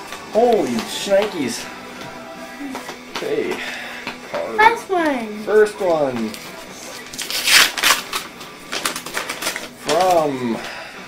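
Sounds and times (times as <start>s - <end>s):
paper envelope tearing and rustling: 6.3s - 10.7s.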